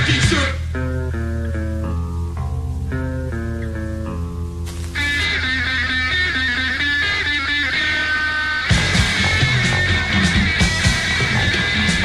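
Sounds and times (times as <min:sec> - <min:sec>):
bright electric guitar line: 0:00.0 - 0:12.0
indie rock band playing: 0:00.0 - 0:12.0.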